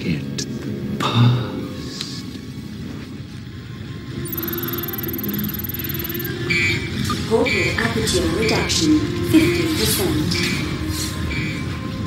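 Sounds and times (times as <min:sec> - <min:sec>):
high electronic whine: 0:04.3 - 0:06.4
short electronic beeps: 0:04.3 - 0:07.3.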